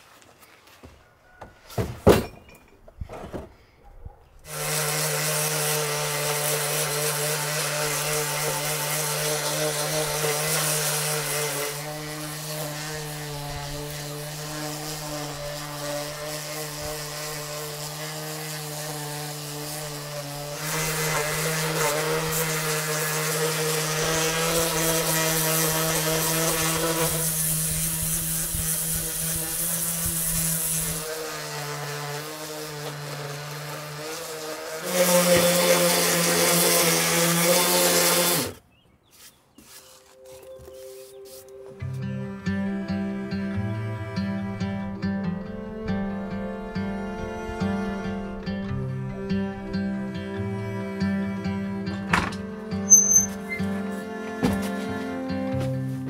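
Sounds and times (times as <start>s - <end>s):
electric sander on wood: 4.4s - 38.6s, 40.3s - 56.0s.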